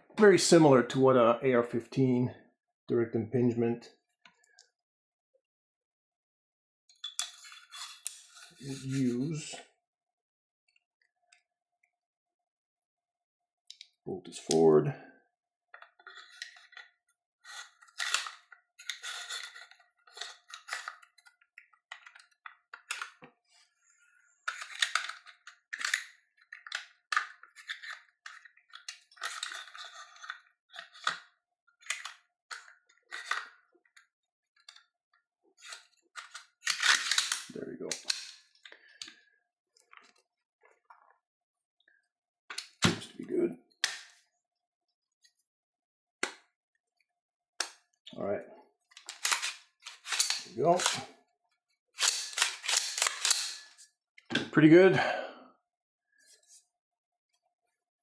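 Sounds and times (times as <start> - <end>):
rifle parts clicking and rattling: 17.8 - 23.2, 24.5 - 33.5, 35.6 - 39.2, 48.9 - 51.1, 52.0 - 53.8.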